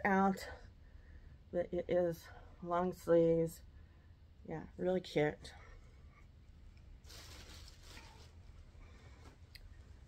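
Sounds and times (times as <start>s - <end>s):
clothing and plastic bag rustling: 7.0s - 10.0s.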